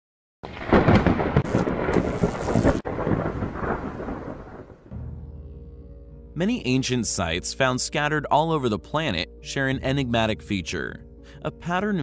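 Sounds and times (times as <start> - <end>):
rain: 0.4 - 4.9
thunder: 0.4 - 5.2.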